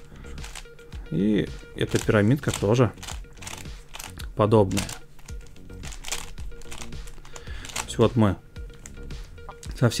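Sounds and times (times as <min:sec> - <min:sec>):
soft background music: 0:00.0 - 0:10.0
plastic puzzle layers clicking: 0:01.9 - 0:05.0, 0:05.9 - 0:07.9.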